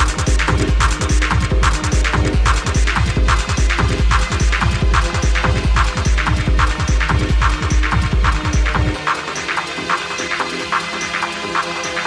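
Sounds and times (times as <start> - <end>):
heavy sub-bass: 0.0 - 9.0
pounding kick drum: 0.0 - 9.0
techno track: 0.0 - 12.0.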